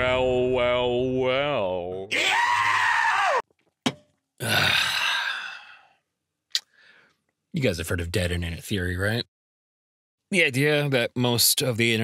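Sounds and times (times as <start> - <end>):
breathy human sigh: 4.4 - 6.0.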